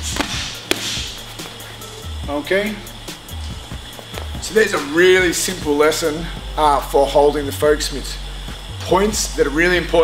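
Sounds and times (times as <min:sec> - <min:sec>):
boxing gloves smacking focus mitts: 0:00.0 - 0:01.6
background music: 0:00.0 - 0:10.0.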